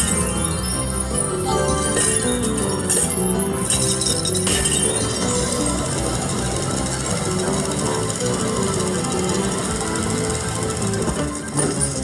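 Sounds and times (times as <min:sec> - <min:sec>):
electronic slot machine melody: 0:00.0 - 0:12.0
rapid rattling ticks: 0:02.3 - 0:12.0.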